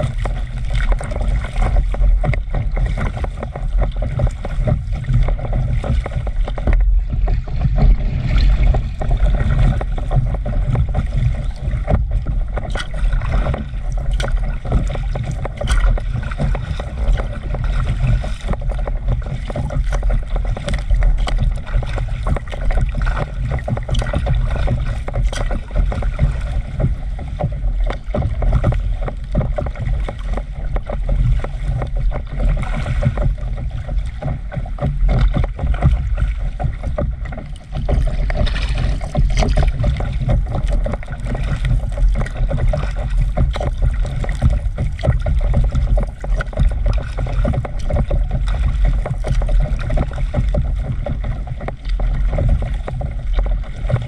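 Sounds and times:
small splashes: 0.0s - 54.0s
steady low rumble: 0.0s - 54.0s
water lapping against paddleboard: 0.0s - 54.0s.

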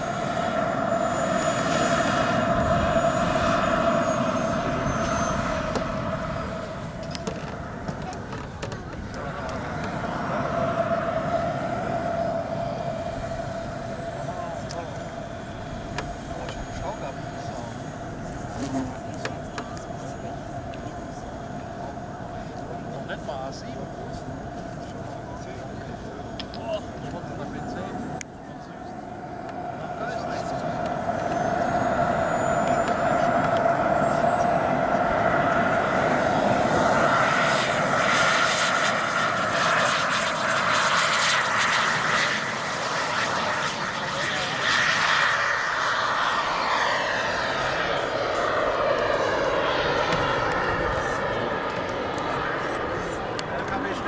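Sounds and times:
model jet turbine whining: 0.0s - 54.0s.

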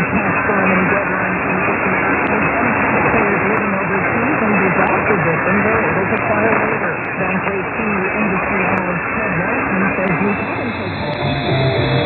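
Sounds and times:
muffled voice on am radio: 0.0s - 11.2s
radio static hiss: 0.0s - 12.0s
faint high whistle: 10.2s - 12.0s.

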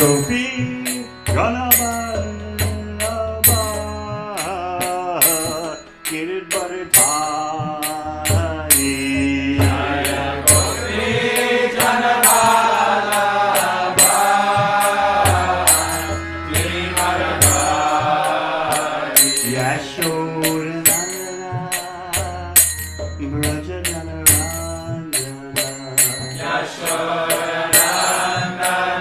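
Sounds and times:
man chanting: 0.0s - 12.0s, 19.4s - 22.6s, 23.2s - 26.5s
hand cymbals beat: 0.0s - 29.0s.

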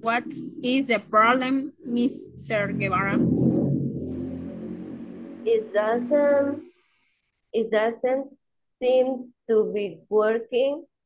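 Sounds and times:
low rumbling noise: 0.0s - 7.0s.

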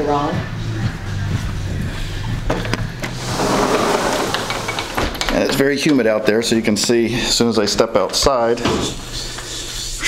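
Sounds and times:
outdoor air hiss: 3.1s - 5.2s.

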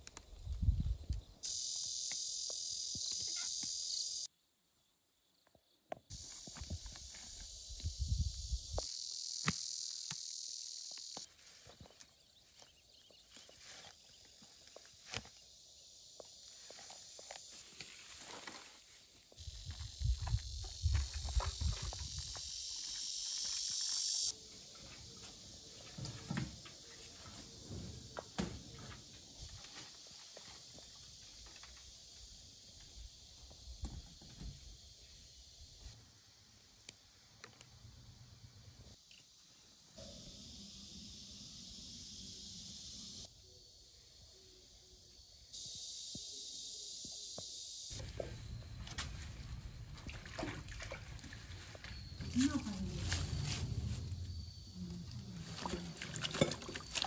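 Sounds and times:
insect chorus buzzing: 0.1s - 57.0s
footsteps through dry brush: 11.2s - 15.4s, 16.4s - 22.1s, 51.3s - 54.3s.

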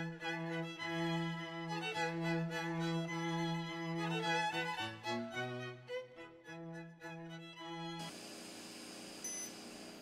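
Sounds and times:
short electronic beep: 9.2s - 9.5s.

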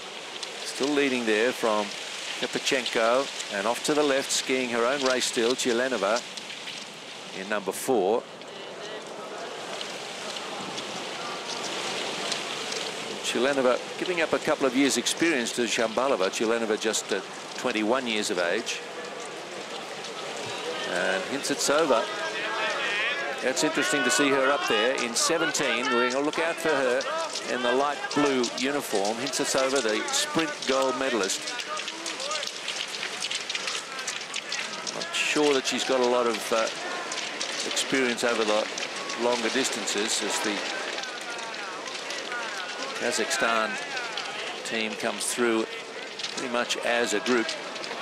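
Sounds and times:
distant voices calling: 18.4s - 48.0s
skis scraping on snow: 19.7s - 48.0s.

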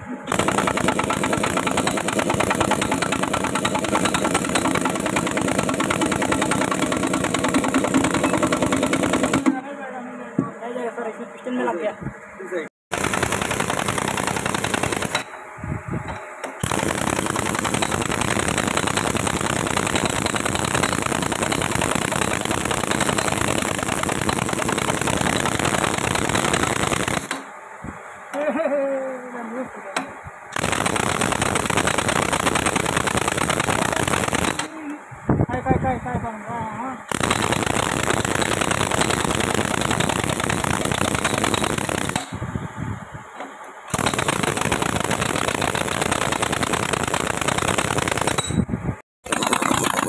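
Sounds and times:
impact wrench hammering: 0.3s - 9.6s, 12.9s - 15.4s, 16.1s - 27.5s, 30.0s - 34.8s, 37.1s - 42.4s, 43.9s - 48.6s, 49.2s - 50.0s.

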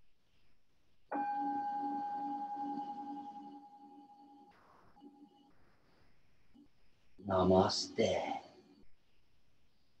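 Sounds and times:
singing bowl ringing: 1.1s - 4.5s.

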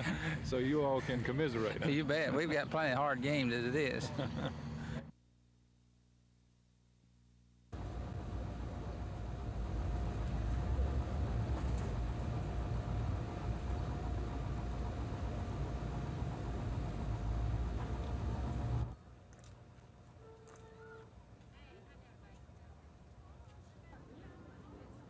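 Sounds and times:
faint steady whine: 0.0s - 25.0s
vehicle engine rumbling: 7.8s - 21.3s.

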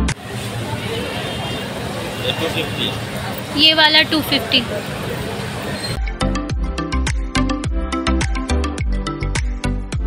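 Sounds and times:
street traffic: 0.0s - 8.6s
background music: 6.0s - 10.0s.

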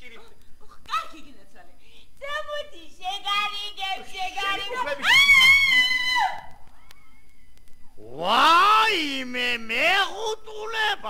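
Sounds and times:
faint clicks: 0.2s - 1.0s, 6.1s - 8.0s.

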